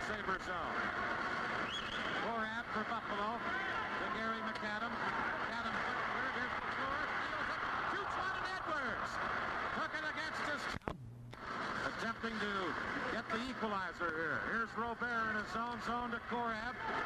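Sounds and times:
arena crowd noise: 0.0s - 10.8s, 11.4s - 17.0s
commentator talking: 11.8s - 17.0s.

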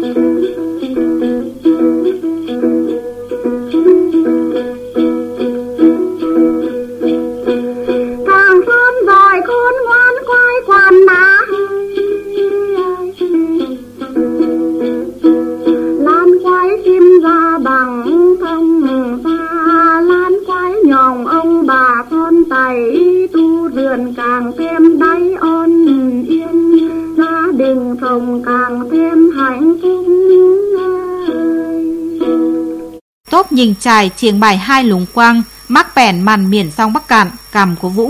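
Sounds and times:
folk music held notes: 0.0s - 33.0s
plucked long-necked lute: 0.0s - 33.0s.

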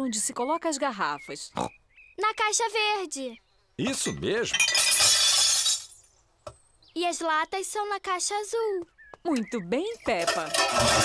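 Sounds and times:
glass bottles crashing and clinking: 3.9s - 6.1s, 10.2s - 11.0s.

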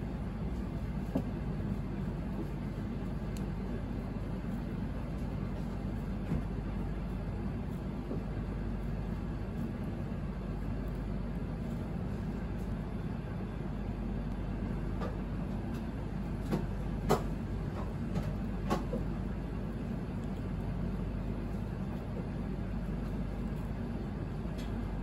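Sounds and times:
low background hum: 0.0s - 25.0s.

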